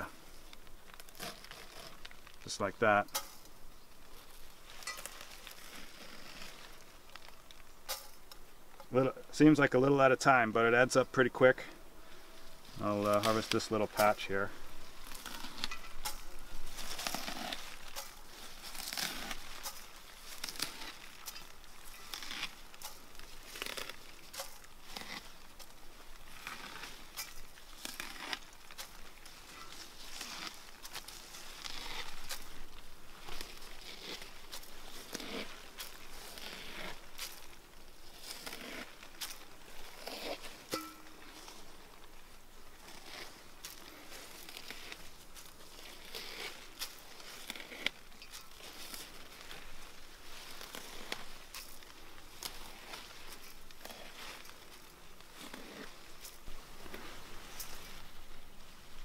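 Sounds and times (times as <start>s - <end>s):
dry rustling seed heads: 0.0s - 59.0s.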